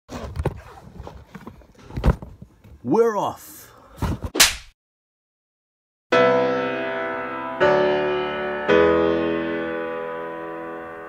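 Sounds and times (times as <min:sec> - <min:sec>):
knocks and rustles: 0:00.1 - 0:02.8.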